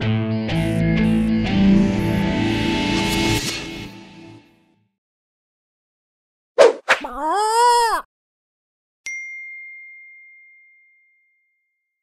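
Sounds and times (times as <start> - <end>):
bright bell ding: 9.1 - 11.5.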